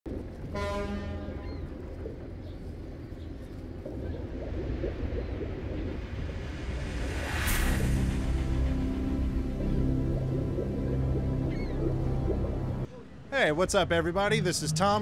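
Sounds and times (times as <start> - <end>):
low rumbling sea ambience: 0.1 - 15.0
horn-like blast: 0.5 - 1.4
whoosh: 4.4 - 10.5.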